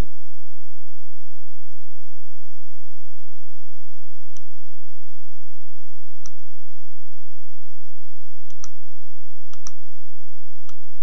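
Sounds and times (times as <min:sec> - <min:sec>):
computer mouse button clicking: 0:08.5 - 0:08.8, 0:09.5 - 0:09.8.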